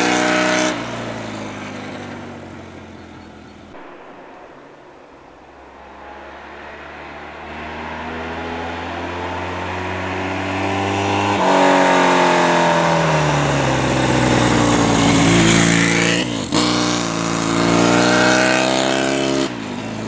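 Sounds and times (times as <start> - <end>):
motorcycle engine passing by: 0.0 - 3.7, 5.9 - 20.0.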